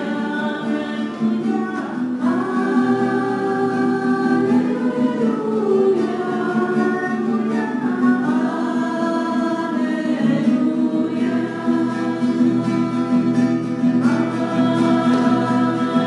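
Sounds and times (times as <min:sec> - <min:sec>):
choir singing a chant: 0:00.0 - 0:07.3, 0:08.2 - 0:16.0
acoustic guitar: 0:00.0 - 0:16.0.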